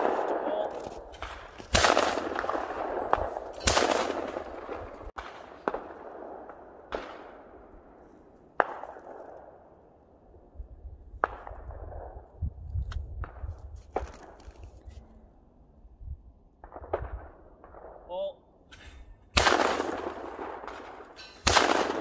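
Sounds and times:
shotgun report: 0:19.4 - 0:22.0.

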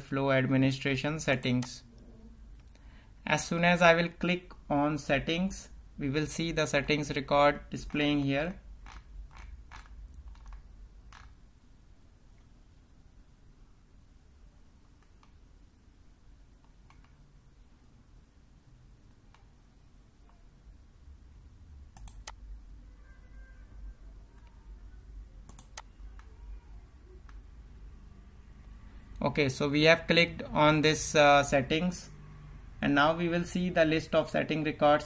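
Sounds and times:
low steady hum: 0:00.0 - 0:35.0
computer mouse clicking: 0:07.8 - 0:11.4, 0:14.8 - 0:15.4, 0:16.6 - 0:17.2, 0:21.9 - 0:22.4, 0:25.4 - 0:26.4, 0:27.2 - 0:27.4.

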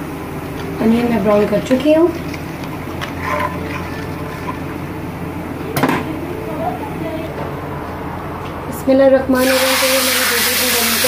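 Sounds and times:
oil sizzling in a frying pan: 0:09.4 - 0:11.0.

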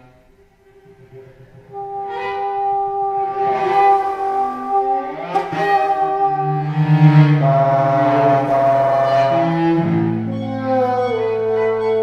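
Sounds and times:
bassoon low notes: 0:00.0 - 0:12.0
cello low notes: 0:00.0 - 0:12.0.

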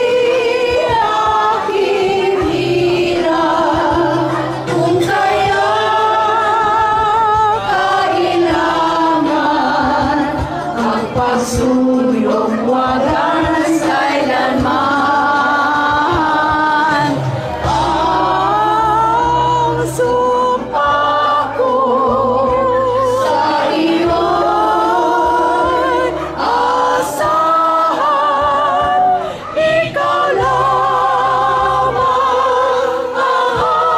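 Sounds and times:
group singing slow song: 0:00.0 - 0:33.9.

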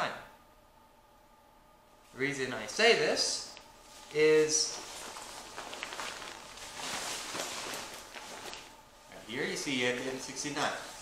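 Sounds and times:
nylon vest rustling: 0:03.4 - 0:11.0.

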